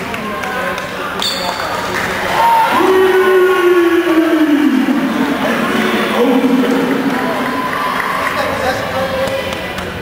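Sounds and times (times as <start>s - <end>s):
echoing spectators' voices: 0.0s - 10.0s
voice holding a long loud note: 2.7s - 7.4s.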